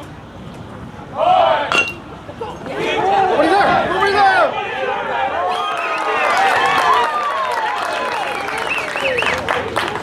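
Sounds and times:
spectators shouting: 1.1s - 1.8s, 2.7s - 9.2s
metal bat hitting ball: 1.7s - 2.0s.

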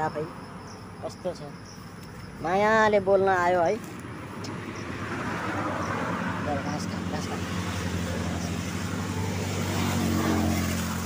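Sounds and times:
vehicle engine passing: 2.6s - 11.0s.

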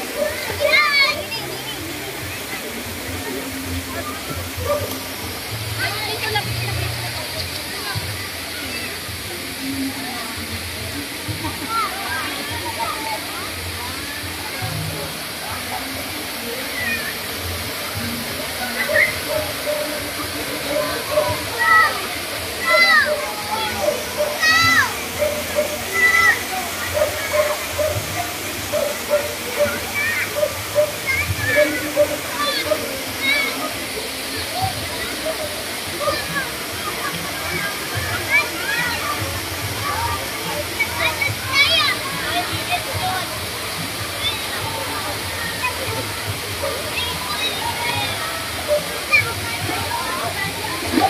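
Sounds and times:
people chattering: 0.0s - 51.0s
small waterfall rushing: 0.0s - 51.0s.

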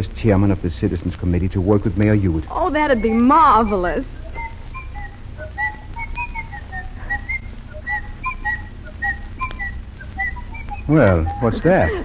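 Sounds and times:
man and boy whistling a tune: 2.9s - 12.0s.

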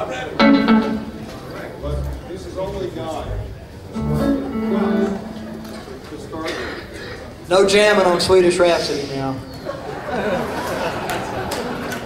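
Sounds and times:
low talk in a hall: 0.0s - 12.0s
plucked guitar notes: 0.3s - 1.6s, 3.9s - 6.3s.

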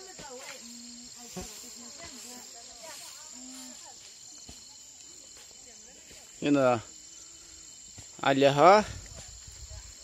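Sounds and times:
insects buzzing: 0.0s - 10.0s.

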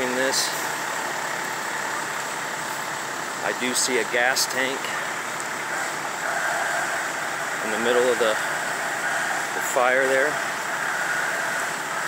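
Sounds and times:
fire burning: 0.0s - 12.0s
fire engine running: 0.0s - 12.0s.

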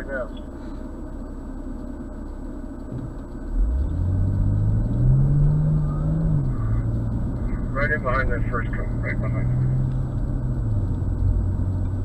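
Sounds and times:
car engine rumble from inside cabin: 0.0s - 12.0s.

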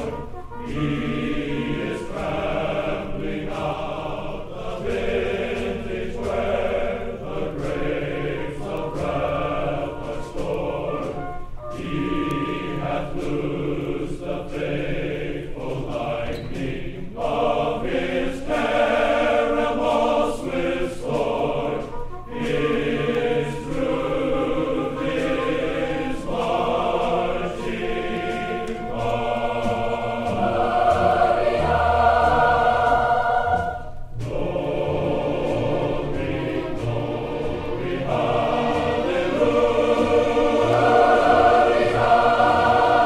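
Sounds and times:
choir singing sustained chords: 0.0s - 43.0s.

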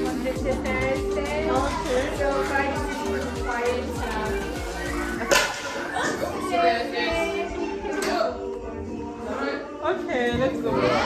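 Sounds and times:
background music with held tones: 0.0s - 11.0s
indistinct voices: 0.0s - 11.0s.

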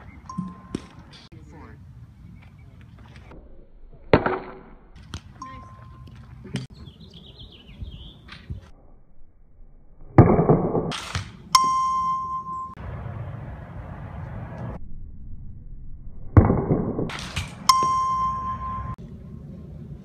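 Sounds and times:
bat striking ball: 0.3s - 1.3s, 16.4s - 19.0s
bell-like chime: 11.6s - 12.8s, 17.7s - 19.0s.

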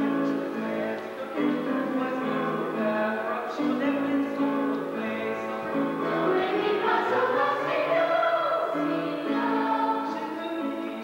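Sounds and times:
ensemble singing with accompaniment: 0.0s - 11.0s.

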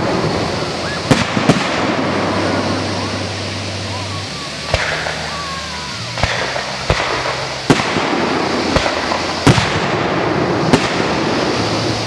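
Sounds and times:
fireworks bursting: 0.0s - 12.0s
steady hiss: 0.0s - 12.0s.

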